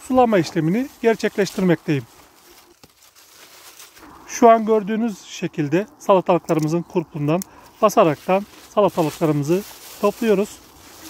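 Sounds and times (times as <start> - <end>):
rustling of leaves and vines: 0.0 - 11.0.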